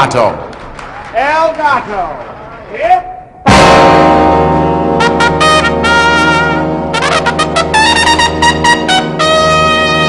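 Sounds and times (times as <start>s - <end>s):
big band brass playing: 3.5s - 10.0s.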